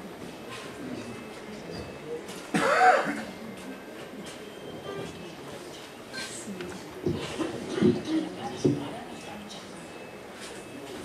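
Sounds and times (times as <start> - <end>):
loud cough-like vocal sound: 2.5 - 3.4.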